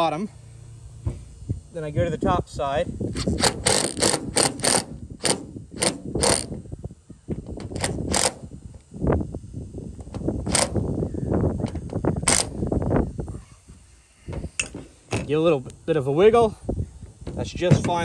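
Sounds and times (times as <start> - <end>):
impact driver rattling on metal: 3.1 - 6.6, 7.4 - 8.6, 10.0 - 11.0, 11.6 - 12.6.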